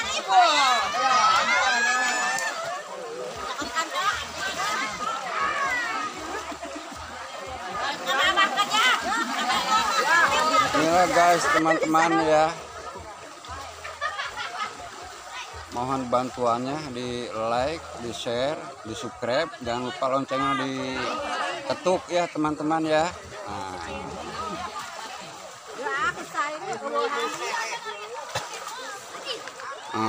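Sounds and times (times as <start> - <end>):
people shouting and chattering: 0.0 - 30.0
water splashing: 0.0 - 30.0.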